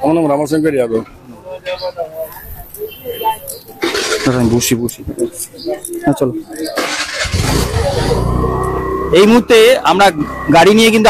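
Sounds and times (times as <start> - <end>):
vehicle engine starting and running: 3.8 - 4.6, 6.8 - 11.0.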